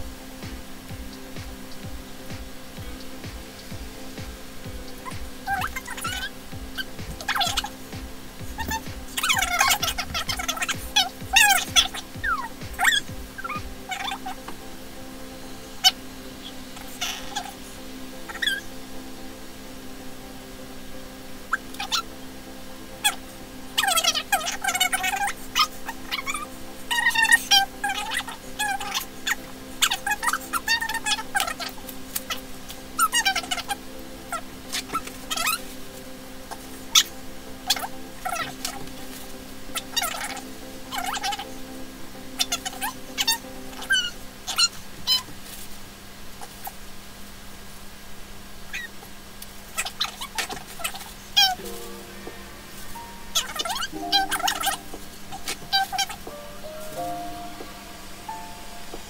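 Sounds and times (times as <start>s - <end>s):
low background drone: 0.0s - 59.0s.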